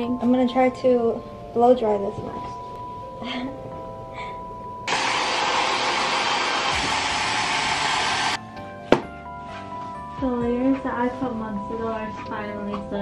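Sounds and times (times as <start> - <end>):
soft background music: 0.0 - 6.1, 8.4 - 13.0
hair dryer blowing: 4.9 - 8.4.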